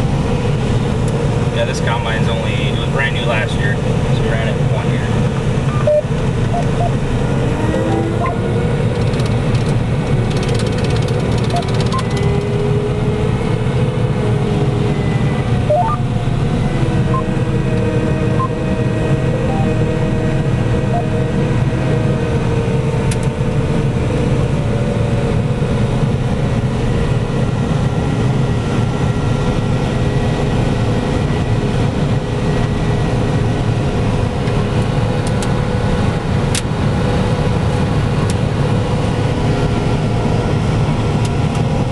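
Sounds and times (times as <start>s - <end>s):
combine harvester low drone: 0.0s - 41.9s.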